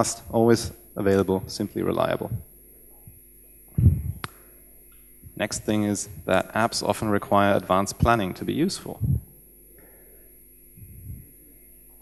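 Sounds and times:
steady low hum: 0.0s - 12.0s
faint soft low sound: 3.8s - 4.3s, 10.8s - 11.5s.

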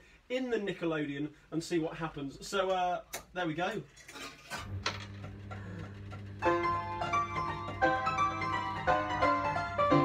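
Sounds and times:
player piano mechanism hum: 4.6s - 10.0s
player piano playing: 5.9s - 10.0s.

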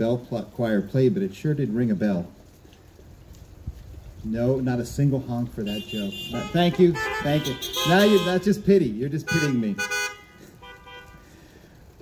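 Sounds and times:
car horns honking faintly: 5.6s - 8.6s, 9.3s - 11.3s.

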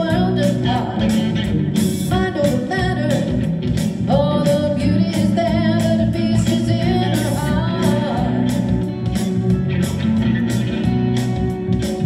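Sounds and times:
woman singing into a microphone: 0.0s - 1.4s, 2.1s - 8.8s
electric guitar strumming: 0.0s - 12.0s.

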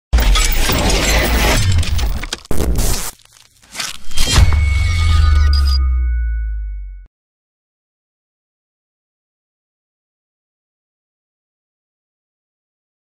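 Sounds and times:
sharp hit: 3.8s - 6.9s.

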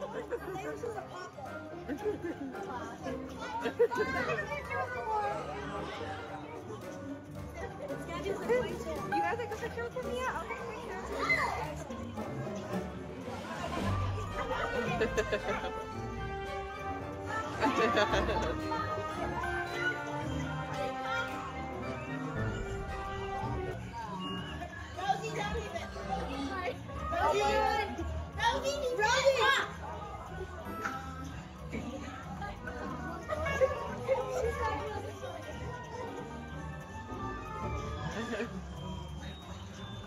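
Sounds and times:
crowd chatter murmur: 0.0s - 40.0s.

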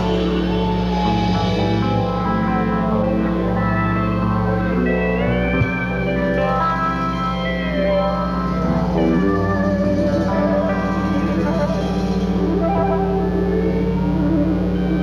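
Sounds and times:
band sustained chord: 0.0s - 15.0s
steel guitar gliding notes: 0.0s - 15.0s.

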